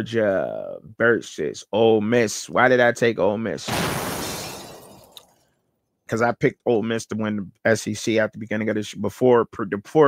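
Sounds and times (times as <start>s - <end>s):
sudden crash: 3.6s - 5.2s.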